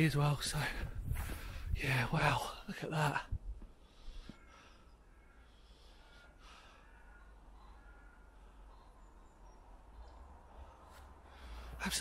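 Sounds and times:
distant bird calls: 0.0 - 12.0.

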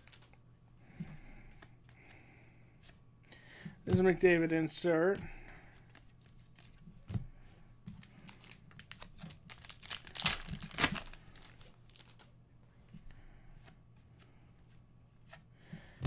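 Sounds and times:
cards rustling: 0.0 - 0.4, 3.9 - 6.9, 7.9 - 12.3
foil wrapper tearing and crinkling: 8.0 - 12.3.

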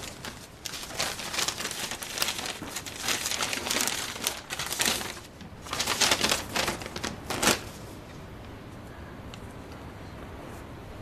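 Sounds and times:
paper rustling: 0.0 - 8.2.

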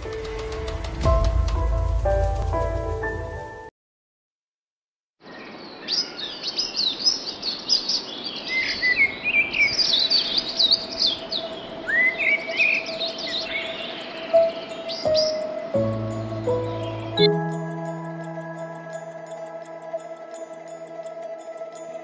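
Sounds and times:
small birds chirping: 5.2 - 22.0.

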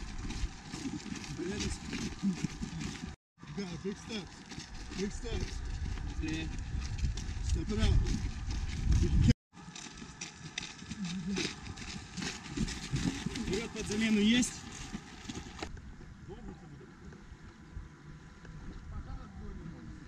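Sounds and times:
footsteps jogging on gravel: 0.0 - 16.1.

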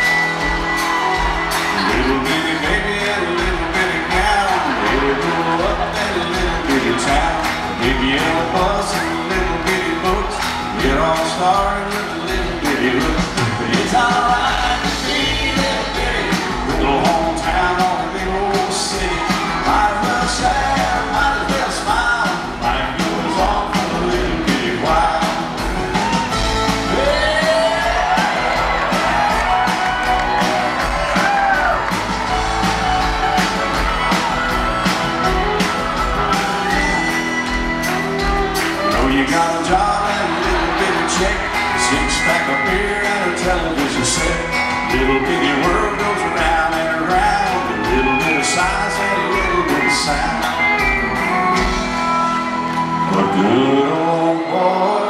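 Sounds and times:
acoustic guitars: 0.0 - 55.0
drums: 0.0 - 55.0
live country band playing: 0.0 - 55.0
sliding lead guitar line: 0.0 - 55.0.

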